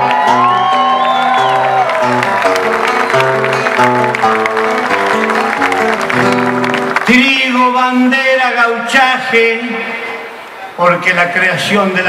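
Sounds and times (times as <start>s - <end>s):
crowd clapping along: 0.0s - 8.0s
acoustic guitar: 0.0s - 10.0s.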